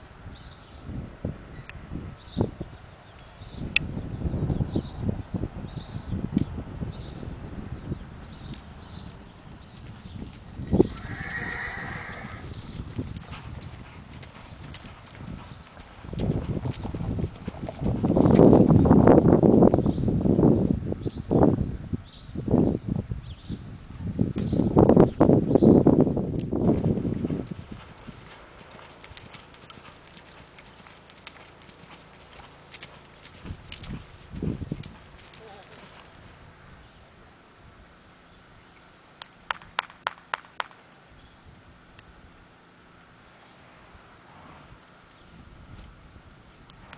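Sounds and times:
hoofbeats on dirt: 9.6 - 19.1, 26.4 - 36.5
horse whinny: 10.8 - 12.5.

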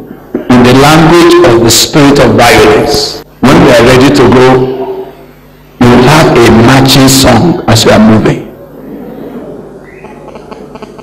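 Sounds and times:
sound system hum: 0.0 - 11.0.

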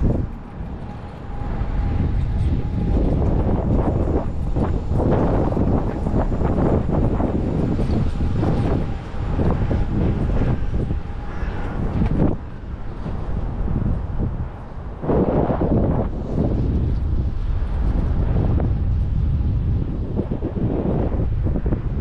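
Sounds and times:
rumble of trains: 0.0 - 22.0
wind gusting on microphone: 0.0 - 22.0.

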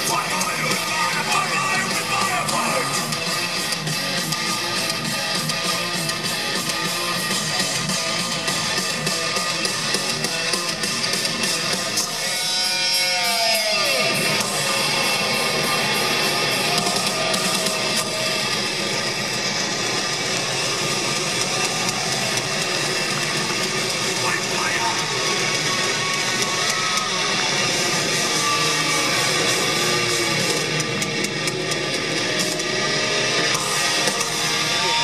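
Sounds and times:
distorted electric guitars: 0.0 - 35.0
drums: 0.0 - 35.0
live heavy metal band: 0.0 - 35.0.

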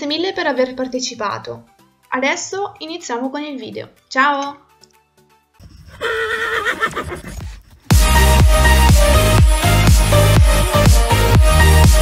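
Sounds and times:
horse whinnying: 5.6 - 7.6.

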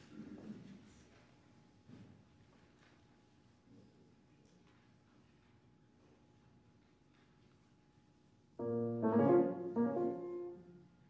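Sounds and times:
grand piano phrase: 8.6 - 10.8.

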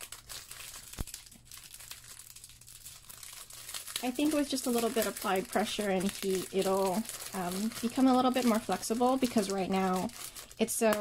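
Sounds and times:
vinyl case crinkling: 0.0 - 11.0.

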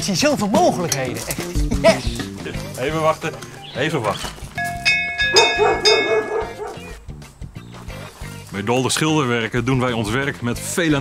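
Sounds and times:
background music: 0.0 - 11.0
dog barking rapidly: 5.2 - 7.0.

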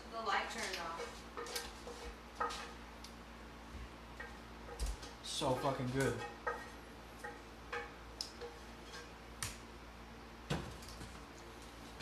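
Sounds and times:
faint clicks and knocks of cookware: 0.5 - 3.2, 3.8 - 9.7.

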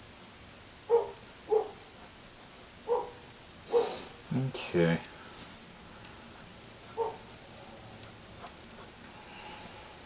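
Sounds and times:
pencil scratching on paper: 0.0 - 4.4, 6.2 - 9.2.

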